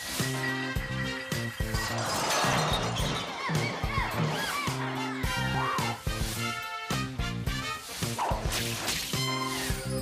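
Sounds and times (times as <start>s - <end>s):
television theme music with beat: 0.0s - 10.0s.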